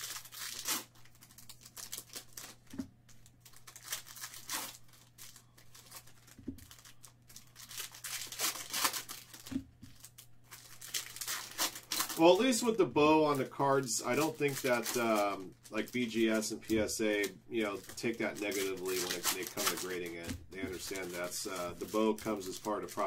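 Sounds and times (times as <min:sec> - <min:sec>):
cards being handled: 0:00.0 - 0:23.0
foil wrappers tearing and crinkling: 0:00.0 - 0:23.0.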